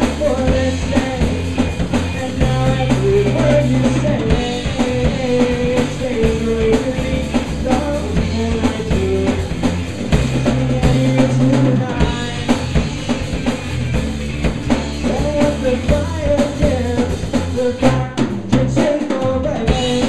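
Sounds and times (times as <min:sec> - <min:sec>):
drum kit: 0:00.0 - 0:20.0
low bass notes: 0:00.0 - 0:20.0.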